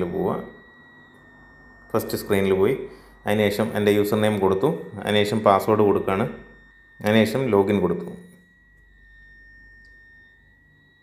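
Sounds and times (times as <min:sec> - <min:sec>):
high-pitched whine: 0:00.0 - 0:11.0
low hum: 0:00.0 - 0:11.0.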